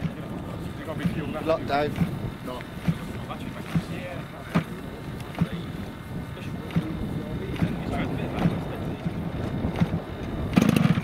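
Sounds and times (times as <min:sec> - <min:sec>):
propeller flick knocks: 0:01.8 - 0:05.7, 0:06.6 - 0:11.0.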